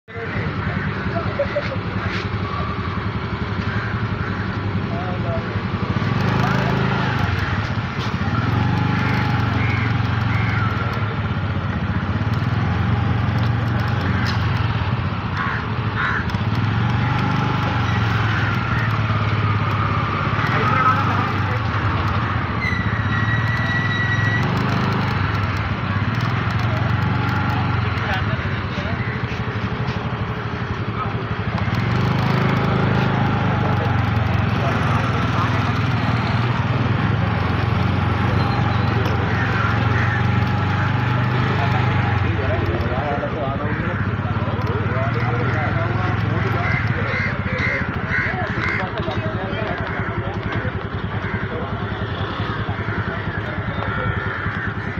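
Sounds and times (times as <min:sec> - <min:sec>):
scooter engine idling: 0:00.2 - 0:54.9.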